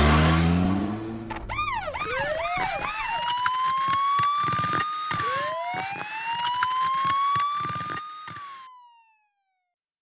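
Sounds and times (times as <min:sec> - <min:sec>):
siren wailing downward: 0:00.0 - 0:09.6.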